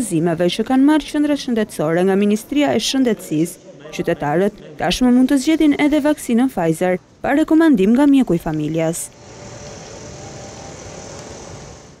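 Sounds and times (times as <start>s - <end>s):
distant city traffic hum: 5.4s - 12.0s.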